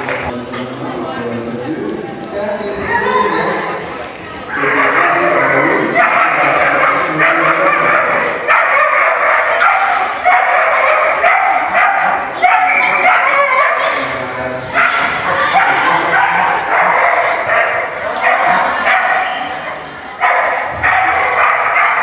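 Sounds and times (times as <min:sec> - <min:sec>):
dog barking: 0:06.0 - 0:14.0, 0:14.8 - 0:19.4, 0:20.2 - 0:22.0.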